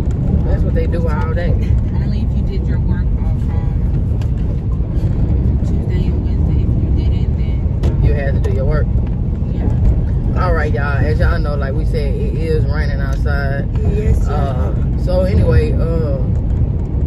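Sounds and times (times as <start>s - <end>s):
car cabin road rumble: 0.0s - 17.0s
low voices: 4.8s - 16.3s.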